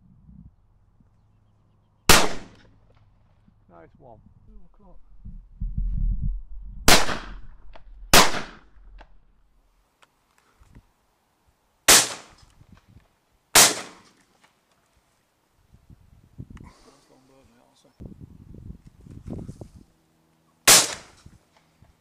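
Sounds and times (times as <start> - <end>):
shotgun shots: 2.1 - 2.7, 6.9 - 8.8, 11.9 - 12.4, 13.6 - 14.1, 20.6 - 21.2
low rumble: 4.2 - 9.7.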